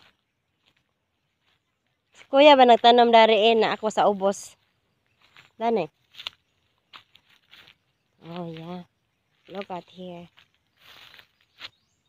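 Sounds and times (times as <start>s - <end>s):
footsteps on dry leaves: 0.0s - 3.3s, 4.5s - 12.0s.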